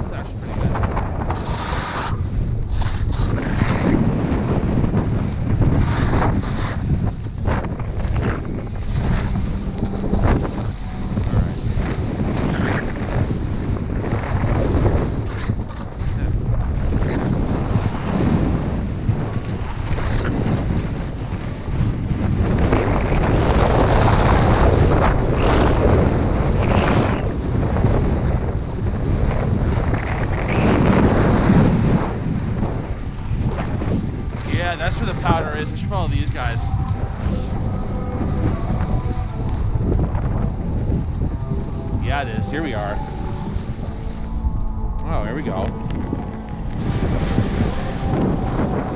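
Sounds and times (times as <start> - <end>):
wind buffeting microphone: 0.0 - 48.9.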